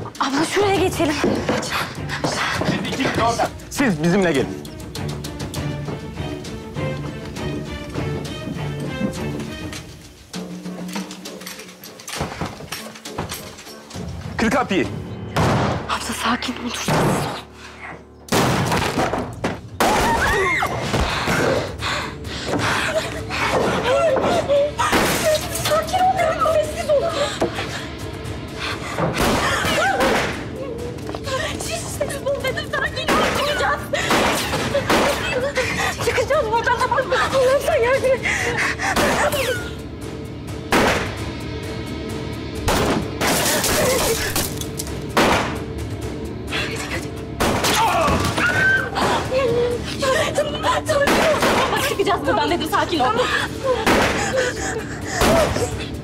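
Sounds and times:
low drone film score: 0.0 - 56.0
women crying and wailing: 19.8 - 40.1, 46.3 - 56.0.

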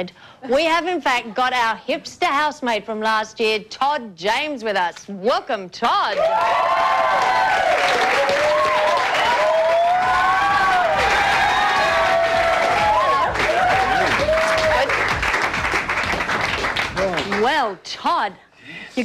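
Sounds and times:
high voices cheering and whooping: 6.1 - 15.0
audience applauding: 6.2 - 17.6.

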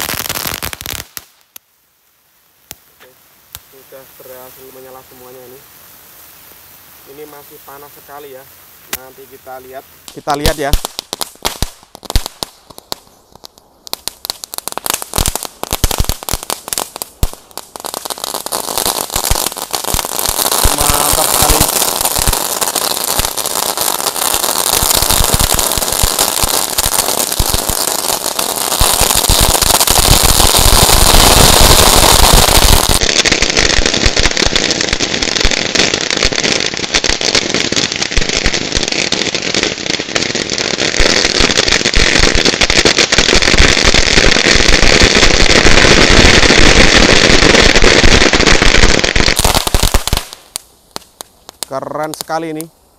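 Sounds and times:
firework fountain hissing spray: 0.0 - 1.6, 2.6 - 52.7
fireworks crackling pops: 0.0 - 52.9.

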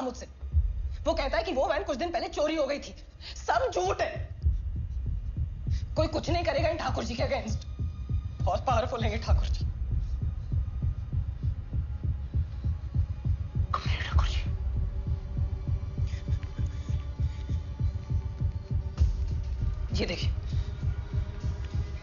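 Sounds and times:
deep throbbing bass pulses: 0.5 - 2.2, 4.1 - 22.0.

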